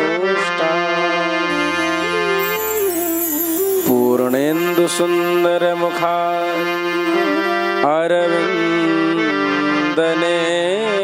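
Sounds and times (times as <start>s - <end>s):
harmonium-like accompaniment: 0.0s - 11.0s
man chanting long held notes: 1.5s - 9.3s.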